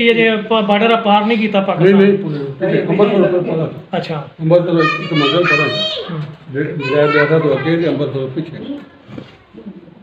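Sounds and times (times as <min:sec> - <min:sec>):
man talking: 0:00.0 - 0:08.8.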